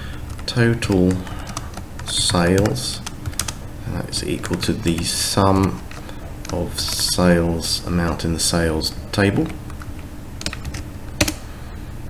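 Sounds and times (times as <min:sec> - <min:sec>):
computer keyboard keystrokes: 0:00.3 - 0:03.6, 0:04.4 - 0:07.2, 0:09.4 - 0:11.4.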